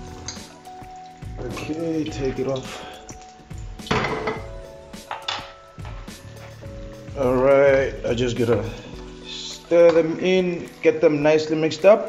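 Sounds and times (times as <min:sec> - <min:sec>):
background music with held notes: 0:00.0 - 0:12.0
metal pot clattering: 0:01.4 - 0:06.7.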